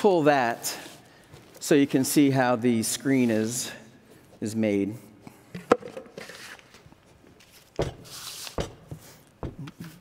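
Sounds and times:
plastic tool set down on table: 5.5 - 6.2.

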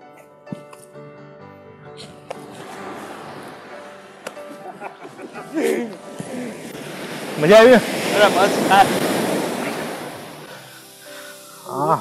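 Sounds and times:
surf washing up a sandy beach: 2.3 - 12.0.

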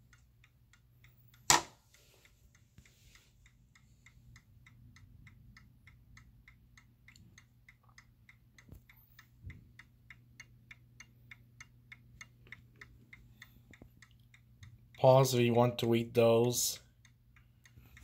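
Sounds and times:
clock ticking faintly: 0.0 - 18.0.

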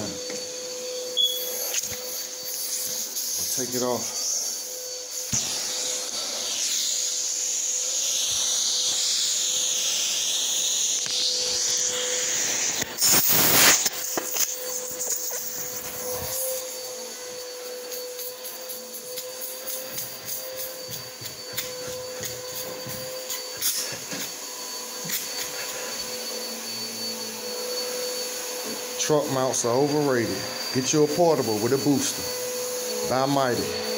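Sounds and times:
vacuum suction whine: 0.0 - 33.9.

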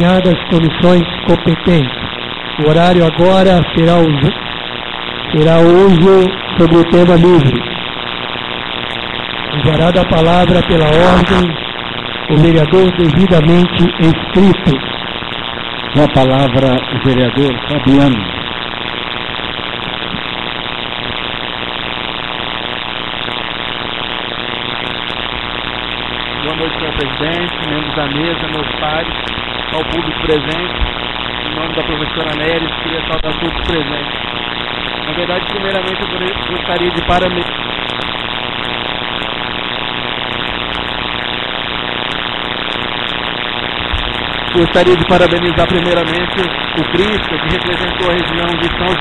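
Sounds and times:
faint hum: 0.0 - 49.0
steady hiss: 0.0 - 49.0.

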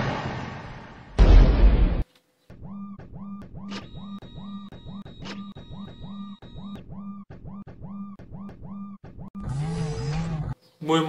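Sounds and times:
synthesized electronic pulses: 2.5 - 10.6.

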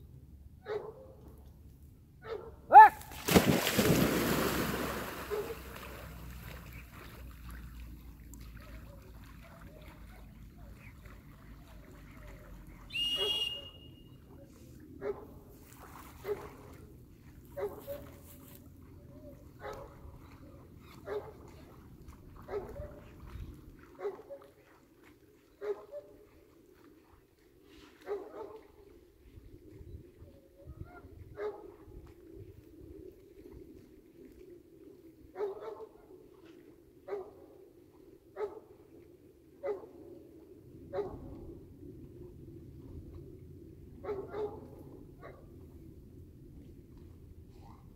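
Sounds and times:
high whistle: 12.9 - 14.2.

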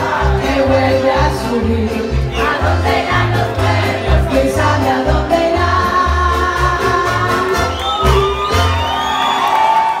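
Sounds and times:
mariachi band with violins: 0.0 - 9.6.

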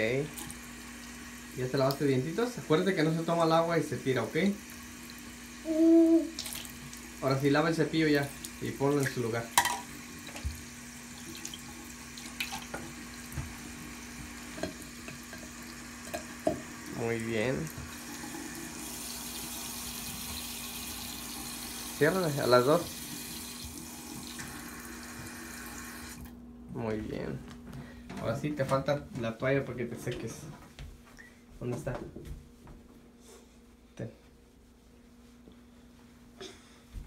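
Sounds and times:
tap water running into sink: 0.0 - 5.6, 6.3 - 26.3
person humming: 5.6 - 6.4.

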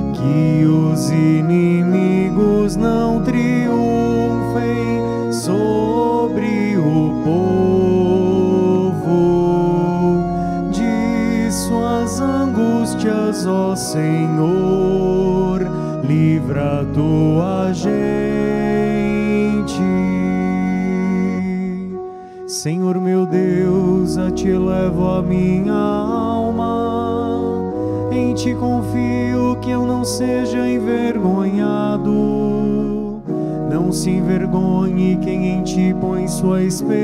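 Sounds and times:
organ playing sustained chords: 0.0 - 37.0
wavering melody line: 0.0 - 37.0.

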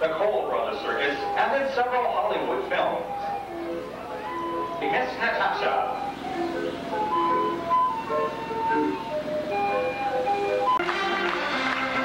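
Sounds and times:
circus organ playing a tune: 0.0 - 12.0
live band music: 2.8 - 12.0.

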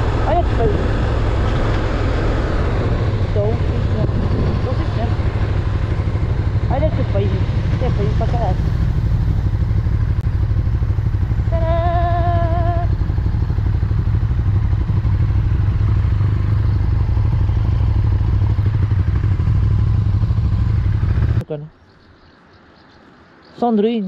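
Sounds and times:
wind rumble on microphone: 0.0 - 21.4
motorcycle engine at road speed: 0.0 - 22.5.

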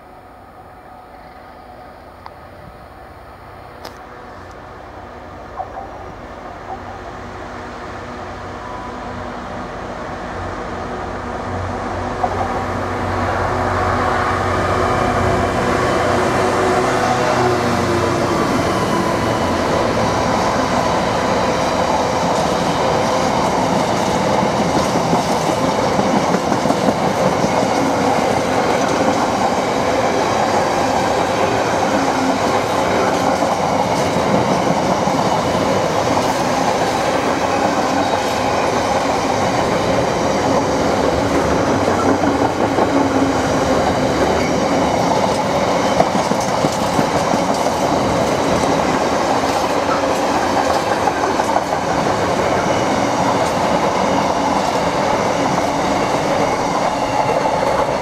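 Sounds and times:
freight train wheels rumbling on rails: 3.7 - 58.0.

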